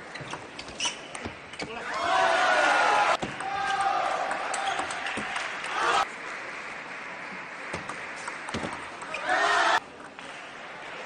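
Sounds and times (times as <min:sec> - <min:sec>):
people shouting and cheering: 0:01.7 - 0:06.1, 0:09.1 - 0:09.8.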